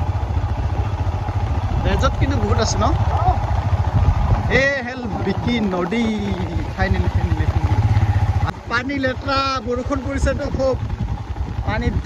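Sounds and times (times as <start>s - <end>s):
motorcycle engine running: 0.0s - 12.0s
man talking: 1.8s - 3.4s, 4.5s - 7.8s, 8.4s - 10.8s, 11.6s - 12.0s.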